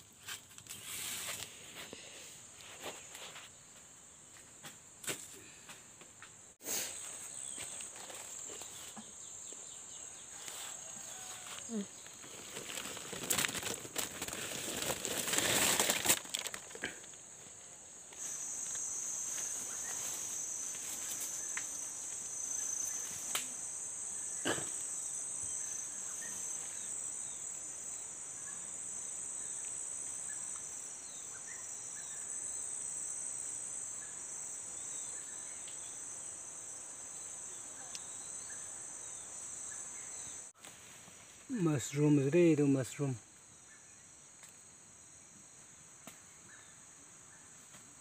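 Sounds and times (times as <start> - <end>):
insects buzzing: 0.0 - 48.0.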